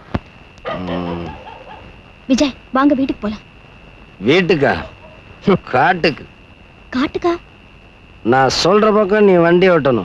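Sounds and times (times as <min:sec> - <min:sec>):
faint high-pitched tone: 0:02.2 - 0:10.0.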